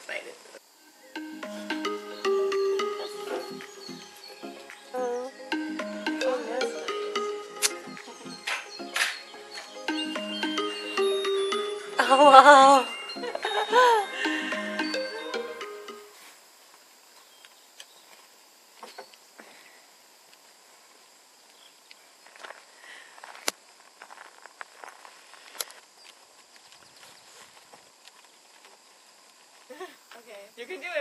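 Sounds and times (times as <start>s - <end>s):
woman exclaiming and laughing: 12.0s - 14.2s.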